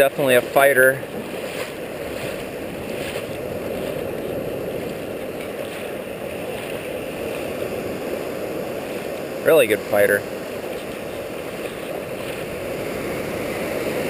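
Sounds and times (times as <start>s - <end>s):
muffled ocean surf: 0.0s - 14.0s.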